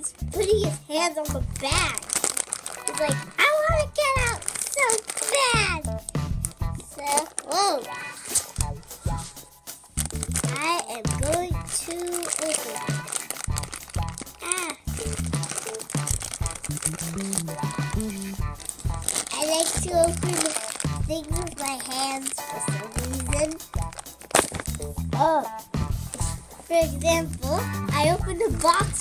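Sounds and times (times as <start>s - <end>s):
plastic bag crinkling: 1.4s - 9.2s, 10.0s - 25.1s, 26.0s - 29.0s
person singing: 17.1s - 18.5s.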